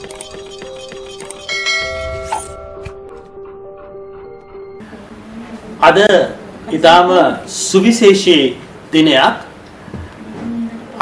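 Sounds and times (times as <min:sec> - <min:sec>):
background music repeating note: 0:00.0 - 0:04.9
bell-like chime: 0:01.1 - 0:03.0.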